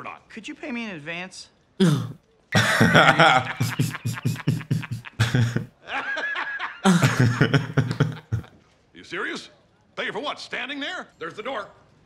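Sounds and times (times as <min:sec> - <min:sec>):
hearty laughter: 0:01.8 - 0:08.5.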